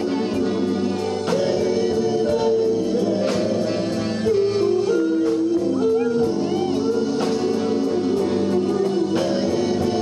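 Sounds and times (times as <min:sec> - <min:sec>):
soul band playing: 0:00.0 - 0:10.0.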